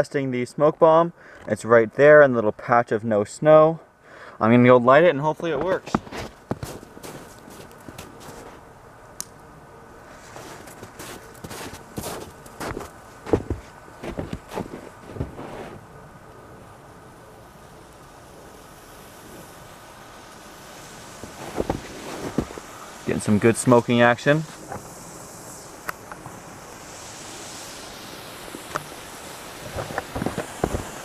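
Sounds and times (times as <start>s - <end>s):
faint steady hiss: 0.0s - 31.0s
footsteps crunching in snow: 5.6s - 8.7s, 10.0s - 15.8s, 21.2s - 22.9s, 29.6s - 31.0s.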